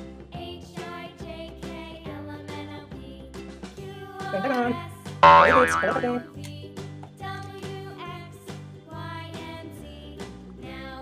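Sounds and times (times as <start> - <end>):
children's music with steady beat: 4.0 - 6.3
cartoon boing sound effect: 4.4 - 6.2.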